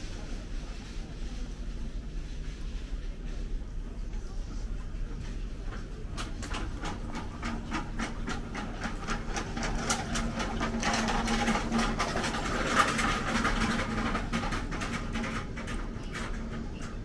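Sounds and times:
steady low hum: 0.0 - 17.0
trolley wheels clicking: 5.3 - 17.0.

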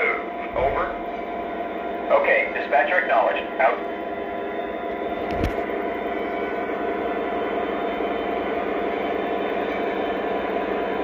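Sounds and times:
diesel engine drone: 0.0 - 11.0.

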